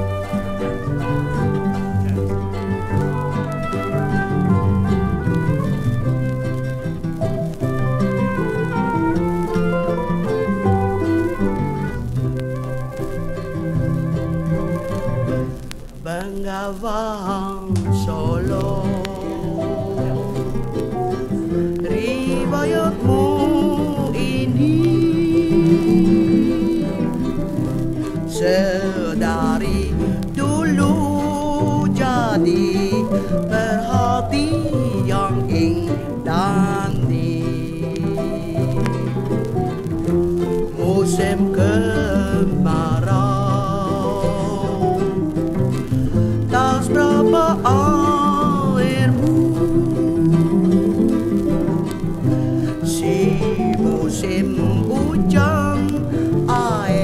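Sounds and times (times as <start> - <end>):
plucked strings band music: 0.0 - 57.0.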